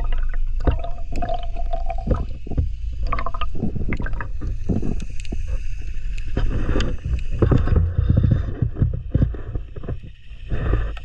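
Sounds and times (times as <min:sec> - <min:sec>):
underwater clicks and knocks: 0:00.0 - 0:10.2
underwater rumble of moving water: 0:00.0 - 0:11.0.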